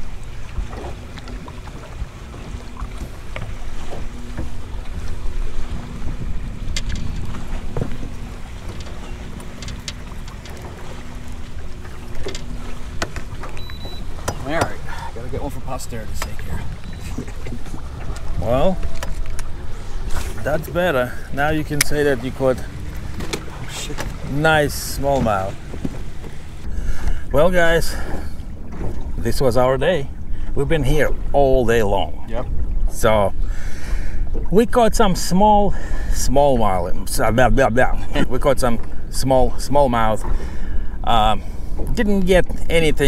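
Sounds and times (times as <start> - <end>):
wind and water rumble: 0.0 - 43.0
light clicks and handling: 8.7 - 10.8.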